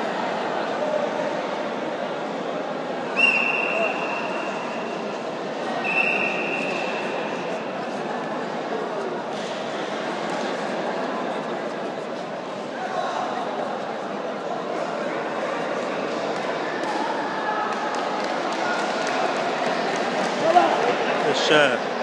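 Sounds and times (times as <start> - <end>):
chatter of spectators: 0.0 - 22.0
referee's whistle blasts: 3.2 - 4.8, 5.8 - 7.0.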